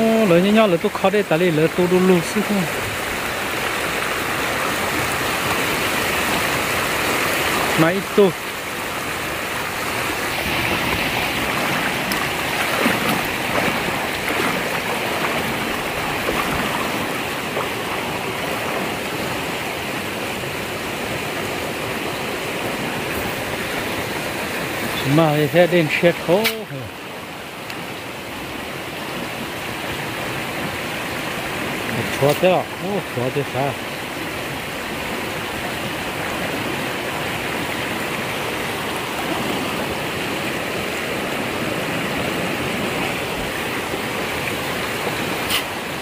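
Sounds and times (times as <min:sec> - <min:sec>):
stream running over stones: 0:00.0 - 0:46.0.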